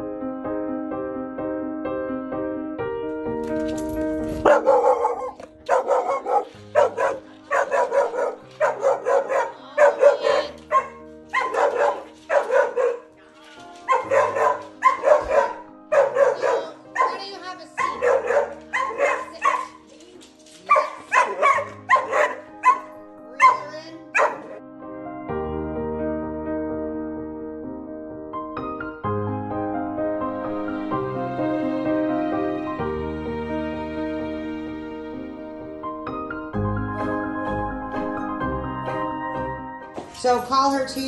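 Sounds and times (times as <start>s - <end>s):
soft piano music: 0.0s - 41.0s
dog barking sharply: 4.4s - 13.1s, 13.9s - 19.9s, 20.7s - 24.6s.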